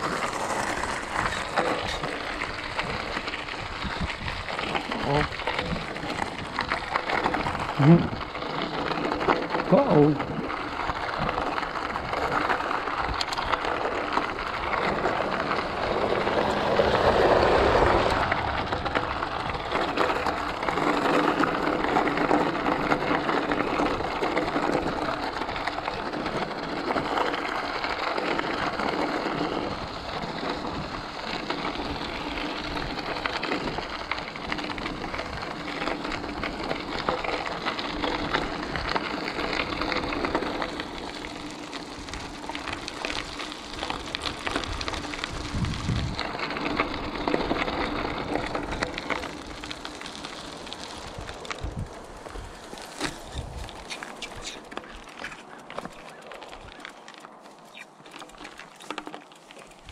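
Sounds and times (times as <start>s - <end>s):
bike tyres crunching on gravel: 0.0s - 59.9s.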